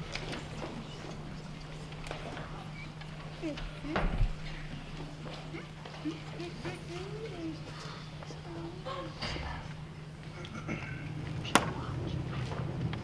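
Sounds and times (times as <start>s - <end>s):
faint voices murmuring: 0.0s - 13.0s.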